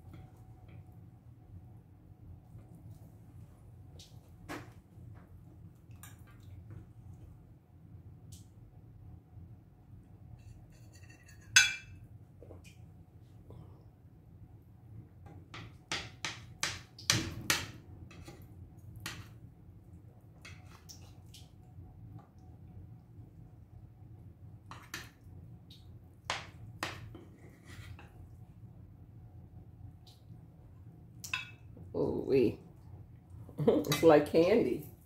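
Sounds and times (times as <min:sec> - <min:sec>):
metal spoon scraping skillet: 0:10.4 - 0:11.9.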